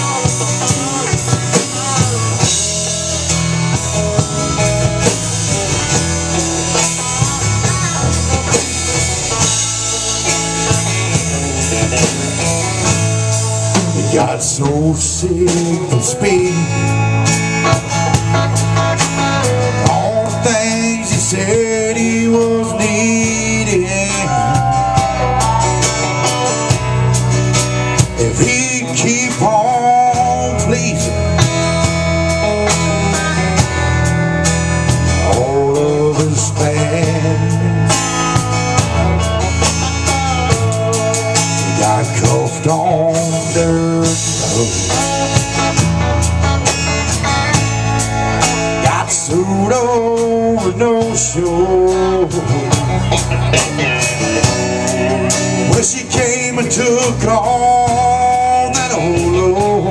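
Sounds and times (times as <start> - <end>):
drum kit: 0.0 - 59.9
electric guitars: 0.0 - 59.9.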